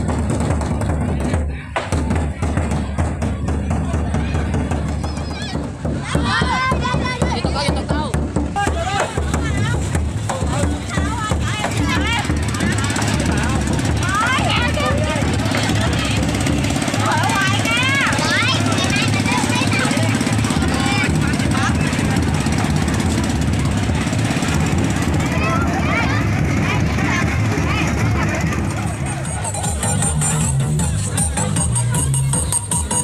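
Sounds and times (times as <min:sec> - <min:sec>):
people calling out: 0:04.1 - 0:32.6
small engine running: 0:10.7 - 0:29.5.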